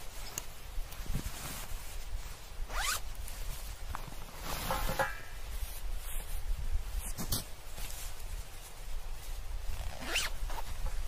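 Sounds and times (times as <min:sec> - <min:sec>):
zipper pulled open: 0:02.7 - 0:03.0, 0:09.7 - 0:10.7.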